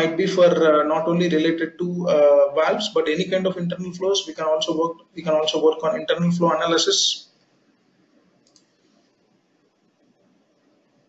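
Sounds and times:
computer mouse click: 8.4 - 8.8.

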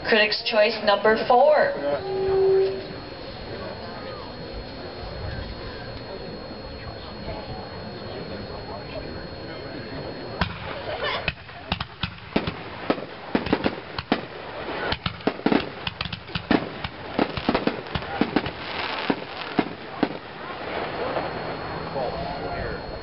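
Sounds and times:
firework shells bursting: 10.4 - 21.0.

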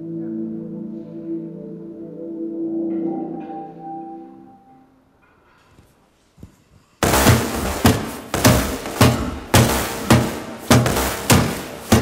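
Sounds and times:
heavy percussive hits: 7.0 - 12.0.

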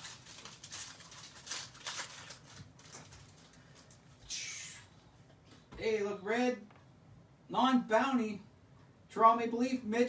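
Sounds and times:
trading cards rustling: 0.0 - 4.2.

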